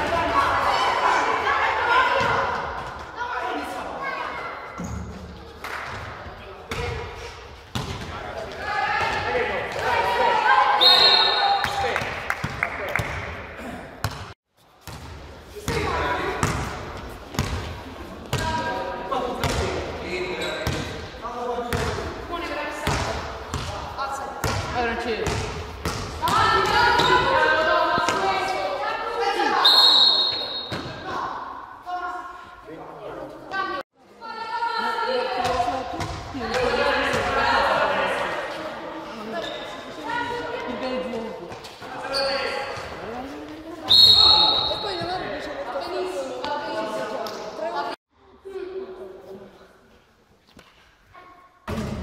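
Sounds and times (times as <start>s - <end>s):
basketball bouncing on gym floor: 7.7s - 8.2s, 14.0s - 17.7s, 19.4s - 19.8s, 22.8s - 23.8s, 24.4s - 27.3s
referee whistle blasts: 10.8s - 11.8s, 29.6s - 30.8s, 43.9s - 45.0s.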